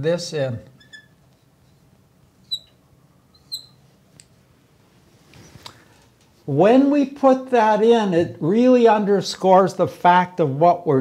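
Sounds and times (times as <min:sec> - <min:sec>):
marker squeaking on glass: 0:00.8 - 0:01.8, 0:02.4 - 0:03.8.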